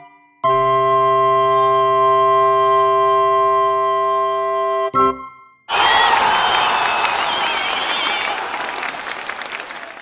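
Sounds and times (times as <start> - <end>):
crowd applause: 5.7 - 10.0.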